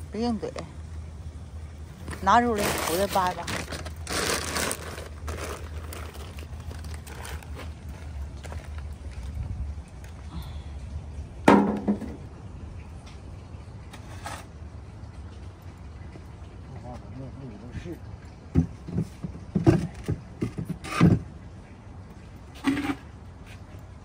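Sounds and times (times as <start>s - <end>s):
steady low rumble: 0.0s - 13.8s
soil pouring rustle: 1.9s - 9.4s.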